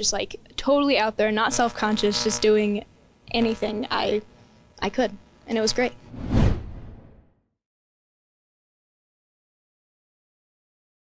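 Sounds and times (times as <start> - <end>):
whoosh transition effect: 6.1 - 7.3.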